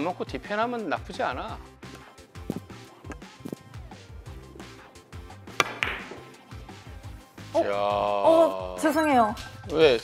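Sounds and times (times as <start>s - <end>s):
background music: 0.0s - 10.0s
billiard balls clicking: 5.5s - 6.3s
cue striking ball: 5.5s - 6.4s.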